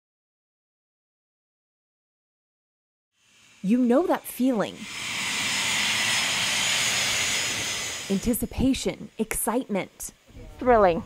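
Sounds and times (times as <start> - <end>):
jet engines whining: 3.3 - 9.3.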